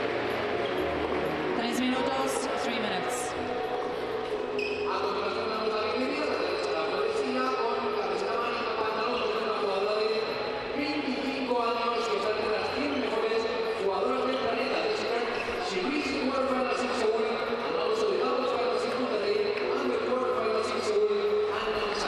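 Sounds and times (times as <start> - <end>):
commentator speaking: 1.6 - 3.4.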